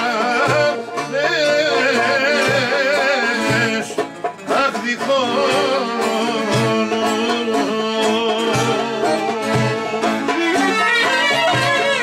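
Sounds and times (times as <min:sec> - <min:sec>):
folk instruments playing: 0:00.0 - 0:12.0
lute strumming: 0:00.0 - 0:12.0
man singing: 0:00.0 - 0:12.0.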